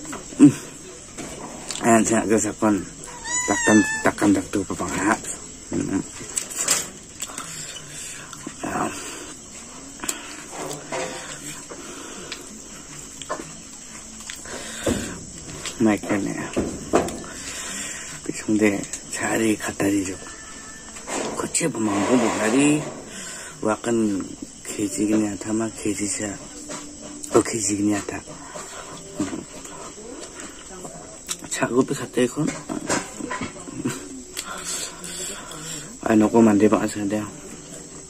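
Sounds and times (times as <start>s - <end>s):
man chewing food: 5.7s - 15.8s
man chewing and smacking: 14.1s - 14.5s.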